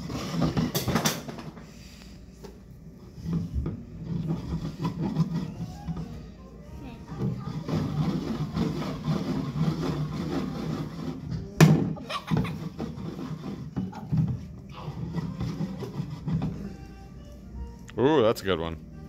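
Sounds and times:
background music: 3.2 - 19.0.

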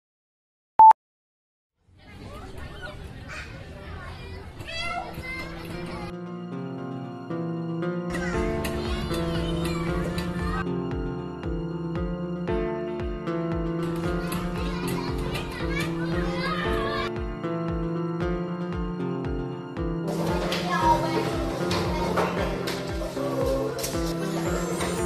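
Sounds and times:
children chattering: 1.9 - 6.1, 8.1 - 10.8, 13.9 - 17.2, 20.1 - 25.0
background music with low beat: 7.3 - 25.0.

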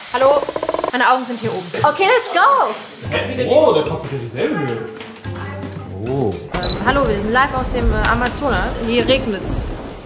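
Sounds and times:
voice: 0.1 - 9.6
background music: 3.0 - 9.7
heavy rain with thunder: 6.6 - 10.0.

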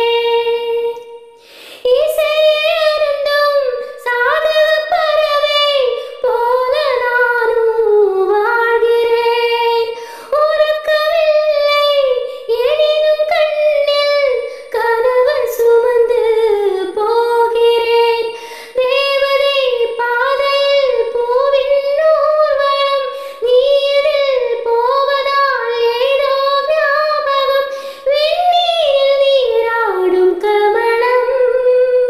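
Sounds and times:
woman singing unaccompanied: 0.0 - 32.0.

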